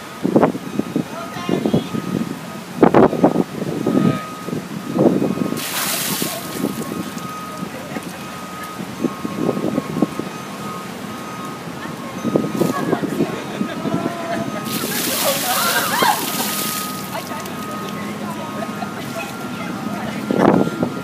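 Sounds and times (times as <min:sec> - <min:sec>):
group of people talking: 0:01.0 - 0:04.4, 0:05.4 - 0:21.0
water splashing over person: 0:05.6 - 0:07.2, 0:14.6 - 0:17.8.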